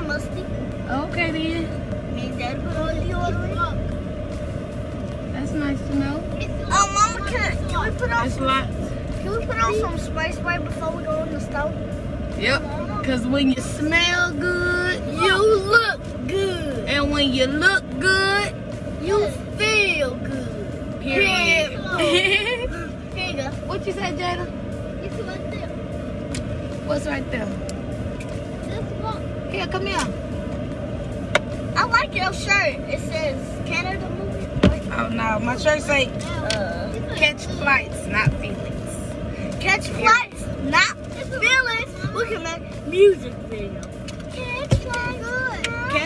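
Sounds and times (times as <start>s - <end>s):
car engine rumble inside cabin: 0.0s - 46.0s.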